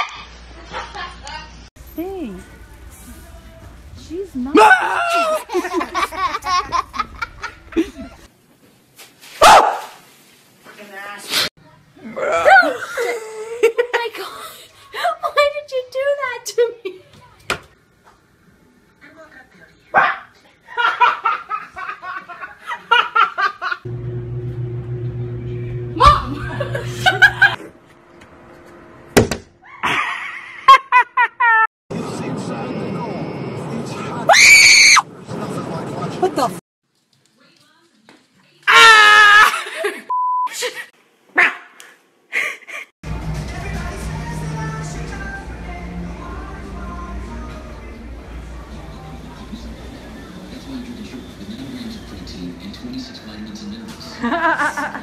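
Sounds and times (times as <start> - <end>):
woman screaming in fright: 4.6 - 5.5, 34.3 - 35.0, 38.7 - 39.7
woman shrieking and laughing: 4.6 - 8.2, 29.6 - 31.7, 38.7 - 40.8.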